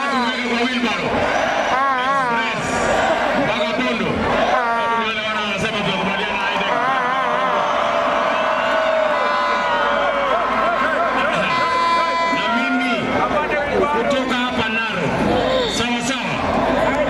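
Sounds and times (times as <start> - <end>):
crowd cheering and chanting: 0.0 - 17.0
long drawn-out calls: 10.9 - 12.8.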